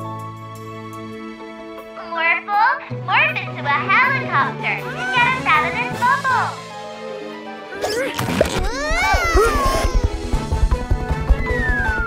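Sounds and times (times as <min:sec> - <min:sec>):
background music: 0:00.0 - 0:12.0
high-pitched cartoon voice babbling: 0:07.8 - 0:10.1.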